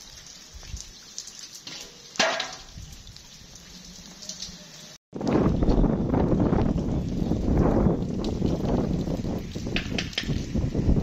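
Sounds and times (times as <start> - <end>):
wind rumble on microphone: 2.7 - 3.5, 5.1 - 11.0.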